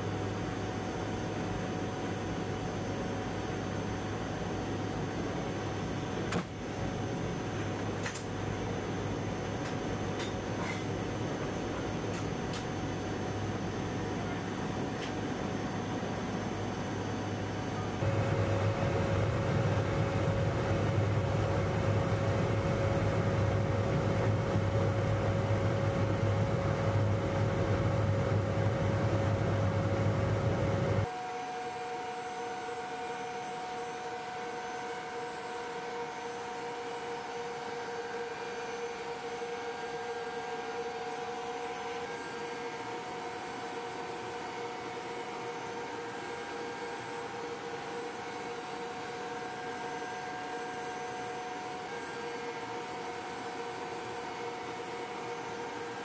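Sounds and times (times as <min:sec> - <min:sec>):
turboprop engines droning inside aircraft: 0:00.0 - 0:56.0.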